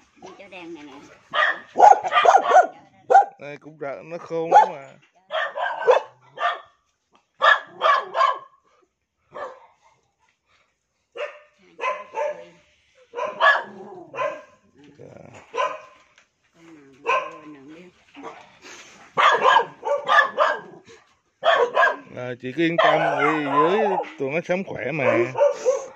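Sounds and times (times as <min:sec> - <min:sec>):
dogs barking: 0:01.3 - 0:03.4, 0:04.5 - 0:06.8, 0:07.4 - 0:08.6, 0:09.3 - 0:09.8, 0:11.2 - 0:12.5, 0:13.1 - 0:14.6, 0:15.4 - 0:16.0, 0:17.0 - 0:17.5, 0:19.1 - 0:24.2, 0:24.8 - 0:25.9.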